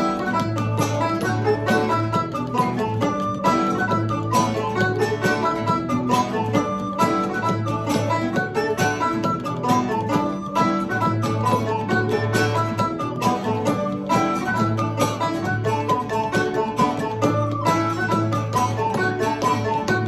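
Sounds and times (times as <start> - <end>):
strummed string instrument: 0.0 - 20.0.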